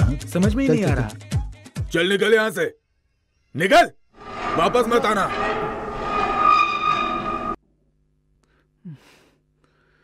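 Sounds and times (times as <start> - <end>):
high horn-like tone: 4.2 - 7.6.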